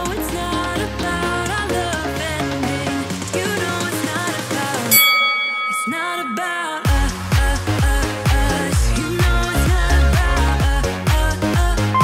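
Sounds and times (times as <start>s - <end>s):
pop music with singing: 0.0s - 12.0s
bell-like timer chime: 4.9s - 7.1s.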